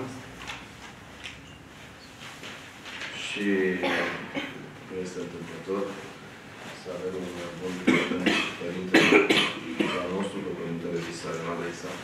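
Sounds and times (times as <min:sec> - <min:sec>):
man speaking: 0:03.1 - 0:12.0
man coughing: 0:03.8 - 0:04.7, 0:07.8 - 0:10.2.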